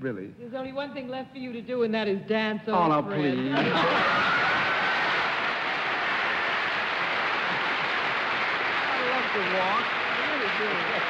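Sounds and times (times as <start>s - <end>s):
audience applauding: 3.6s - 11.0s.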